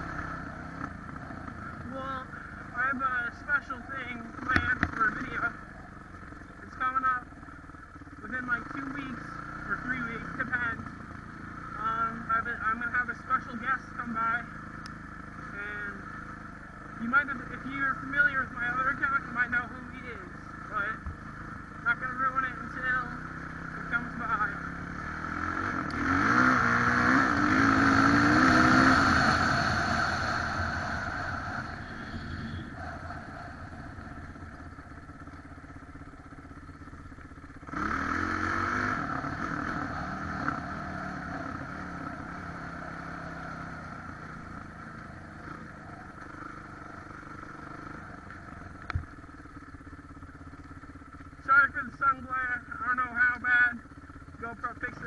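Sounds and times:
dirt bike engine revving: 0.0s - 5.6s, 8.2s - 55.0s.

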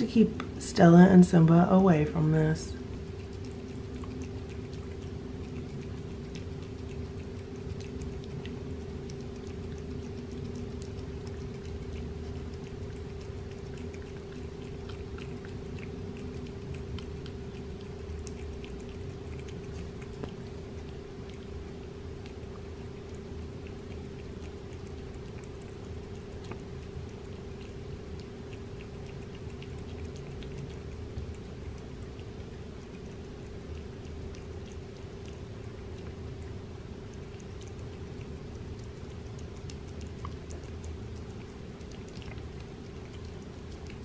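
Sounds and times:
cat licking and lapping food: 0.0s - 44.0s
steady background hum: 0.0s - 44.0s.

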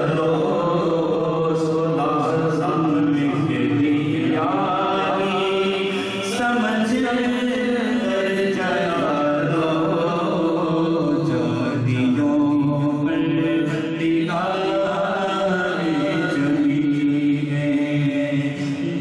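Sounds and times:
man chanting unaccompanied: 0.0s - 19.0s.

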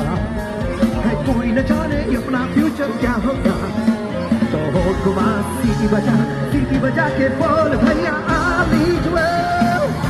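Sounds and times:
live pop song through pa: 0.0s - 10.0s.

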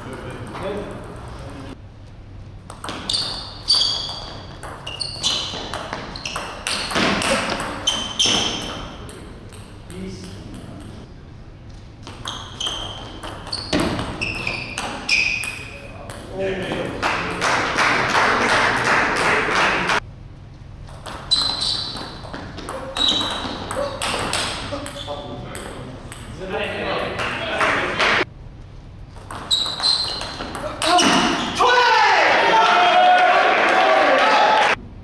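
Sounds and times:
table tennis ball rally: 2.6s - 11.1s, 12.0s - 20.0s, 20.9s - 28.3s, 29.1s - 34.8s.

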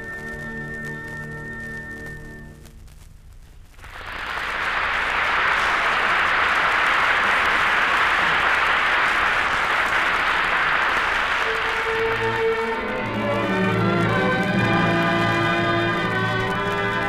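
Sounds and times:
audience applauding: 3.8s - 17.0s
orchestra music: 11.3s - 17.0s.

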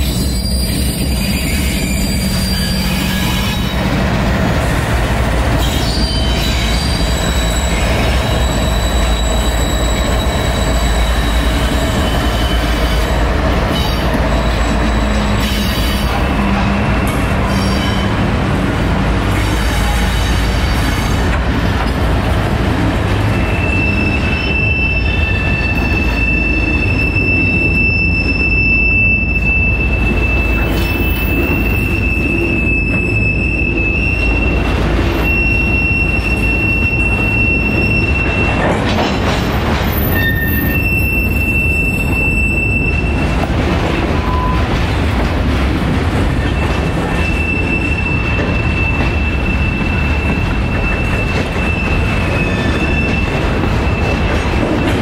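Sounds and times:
steel wheels squealing: 0.0s - 4.0s, 5.5s - 18.2s, 23.2s - 45.0s, 46.3s - 55.0s
freight train rumbling: 0.0s - 55.0s.

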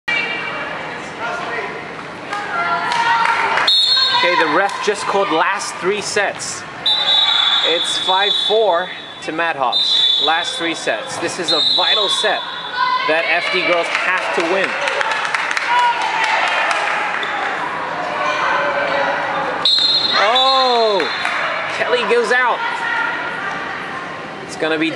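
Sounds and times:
voices echoing in a hall: 0.1s - 24.9s
referee's whistle blast: 6.8s - 10.7s, 11.4s - 12.8s, 19.6s - 21.4s.

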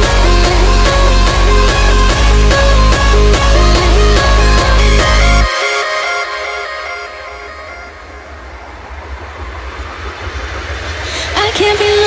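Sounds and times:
low bass rumble: 0.0s - 5.5s
electronic noise wash: 0.0s - 12.0s.

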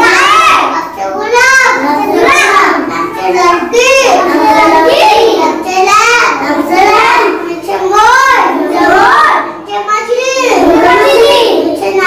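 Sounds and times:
children chanting reading aloud: 0.0s - 12.0s.

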